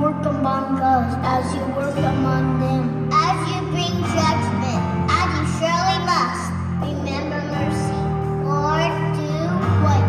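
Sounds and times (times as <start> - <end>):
bass guitar: 1.2 - 10.0.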